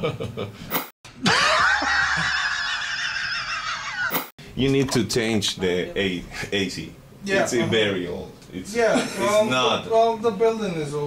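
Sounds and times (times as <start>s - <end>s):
man laughing loudly: 1.2s - 4.3s.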